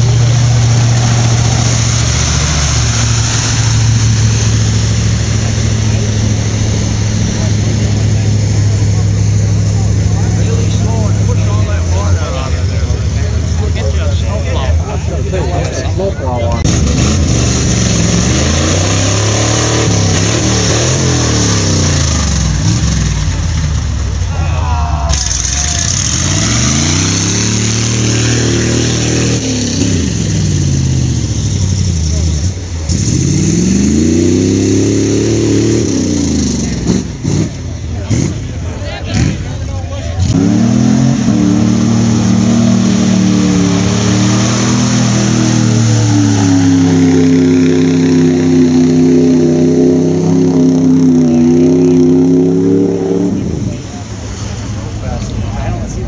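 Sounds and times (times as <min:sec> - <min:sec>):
truck engines revving: 0:00.0 - 0:56.0.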